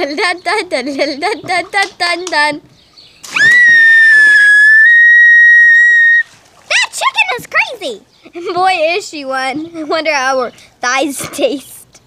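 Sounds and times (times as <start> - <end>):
splash into swimming pool: 3.2 - 7.0.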